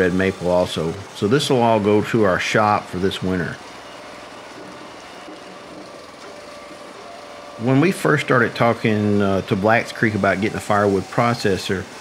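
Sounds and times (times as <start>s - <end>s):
conveyor belt running: 0.0s - 12.0s
firewood processor engine running: 0.0s - 12.0s.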